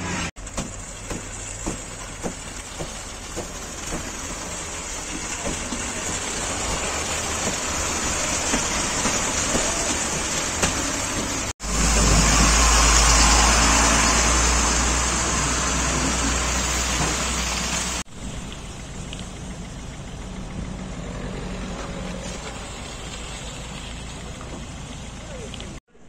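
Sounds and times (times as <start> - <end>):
diesel truck engine running: 0.0 - 25.8
steady traffic noise: 0.0 - 26.0.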